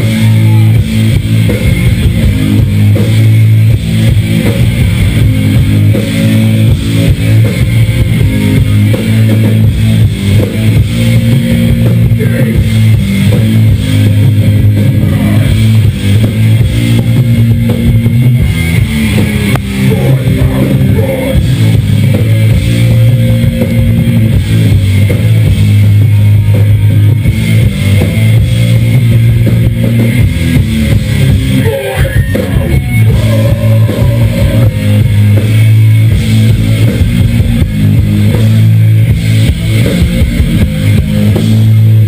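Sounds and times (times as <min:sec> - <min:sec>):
rock band playing loud: 0:00.0 - 0:42.0.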